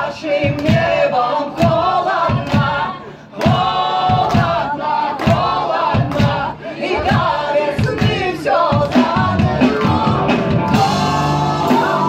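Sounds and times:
drum beat: 0.3s - 12.0s
band playing: 9.0s - 12.0s
person singing: 9.3s - 12.0s.

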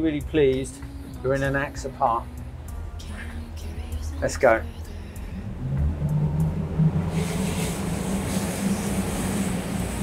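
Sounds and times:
outboard engines throttling up: 5.4s - 10.0s.

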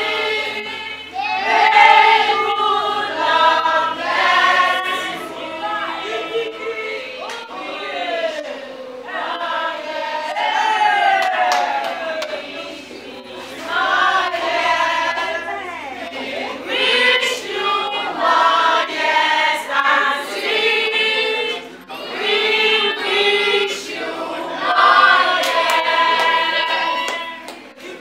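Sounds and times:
group singing unaccompanied: 0.0s - 28.0s.

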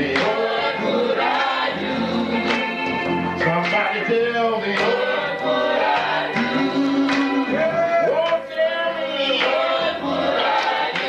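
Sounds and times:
gospel group singing in harmony: 0.0s - 11.0s
guitar: 0.0s - 11.0s
electric bass: 1.0s - 3.6s.

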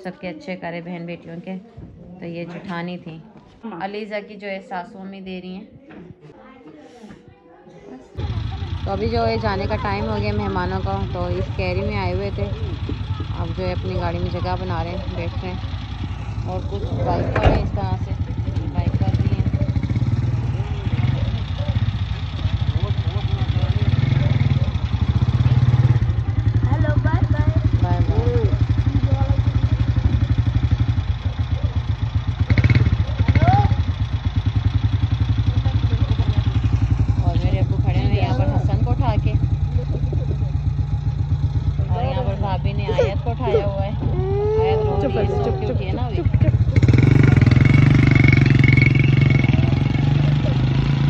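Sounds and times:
people talking: 0.0s - 15.7s, 16.4s - 22.0s, 22.6s - 30.1s, 32.9s - 33.8s, 35.4s - 36.5s, 37.2s - 40.7s, 41.7s - 47.8s, 48.8s - 51.0s
vehicle engine idling: 8.2s - 51.0s.

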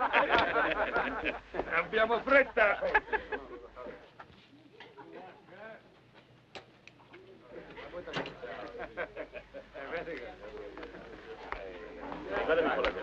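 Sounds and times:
people talking quietly: 0.0s - 13.0s.

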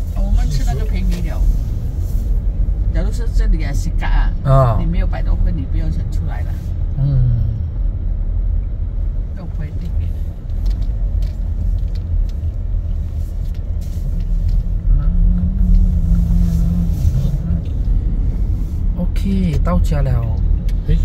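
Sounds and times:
car cabin rumble: 7.0s - 21.0s.

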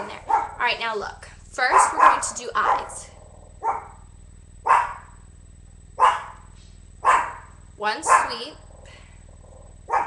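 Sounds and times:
dog barking: 0.2s - 0.7s, 1.6s - 4.0s, 4.6s - 5.2s, 6.0s - 9.0s.

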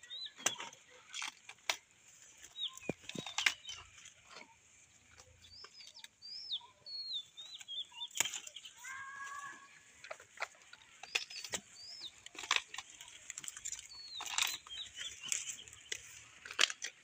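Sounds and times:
small birds chirping: 0.0s - 17.0s
leaves torn and snapped by hand: 8.1s - 8.6s.

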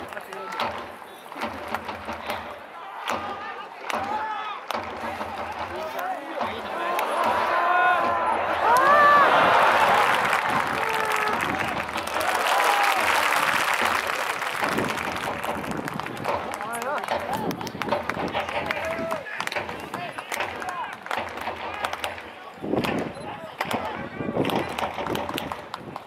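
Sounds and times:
stadium crowd applauding: 0.0s - 0.6s, 6.5s - 22.9s, 24.4s - 26.0s.

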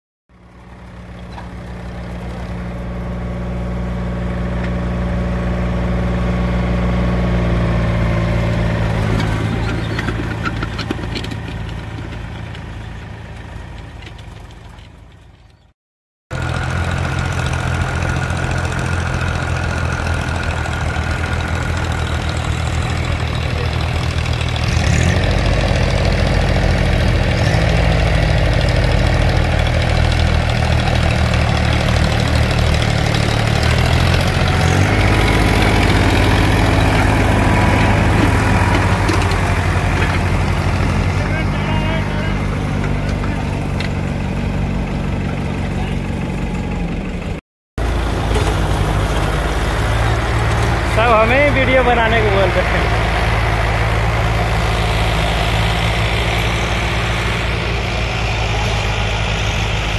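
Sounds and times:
tractor engine running under load: 0.3s - 15.7s, 16.3s - 59.9s.

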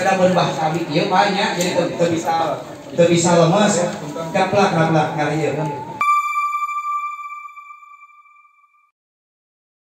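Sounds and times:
electronic bell-like chime: 6.0s - 8.9s.

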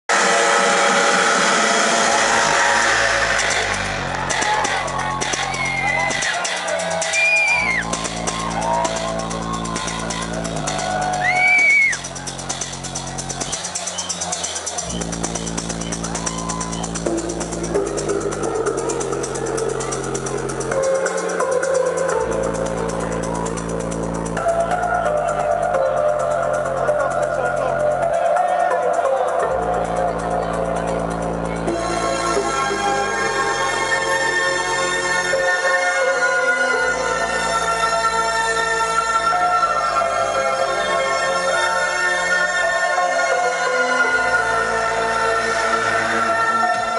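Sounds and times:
low bass line: 0.1s - 6.8s, 7.5s - 13.6s, 14.7s - 20.9s, 21.8s - 28.2s, 29.4s - 35.4s
sustained synth chords: 0.1s - 7.0s, 7.8s - 11.2s, 12.0s - 46.9s
hi-hat pattern: 0.1s - 31.9s
electronic dance music: 0.1s - 46.9s
fast ticking beat: 3.3s - 28.3s.

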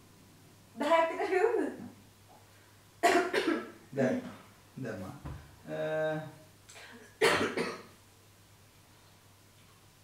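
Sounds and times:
person coughing: 3.0s - 3.7s, 6.8s - 7.9s.

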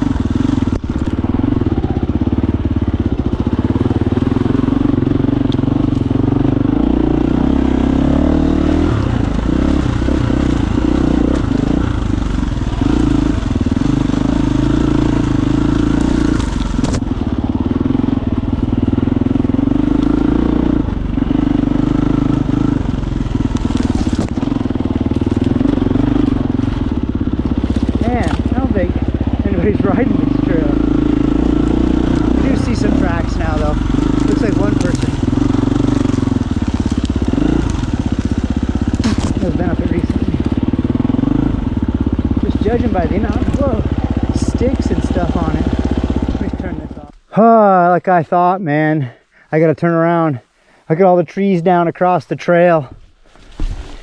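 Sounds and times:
motorcycle engine at low speed: 0.0s - 49.4s.

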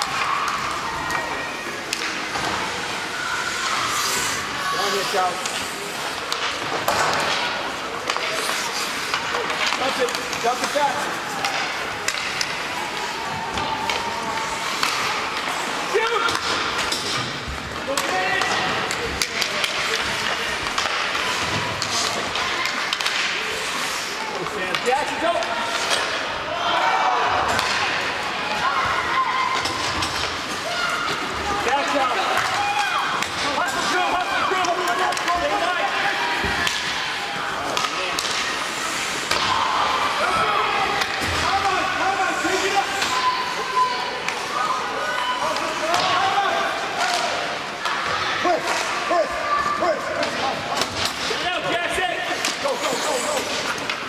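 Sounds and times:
hockey sticks and puck clacking: 0.0s - 54.0s
spectators shouting: 25.1s - 53.6s.

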